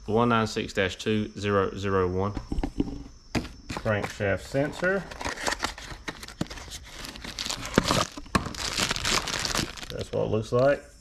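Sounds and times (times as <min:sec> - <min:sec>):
cardboard box being opened: 0:05.1 - 0:10.0
plastic bag crinkling: 0:05.2 - 0:10.3.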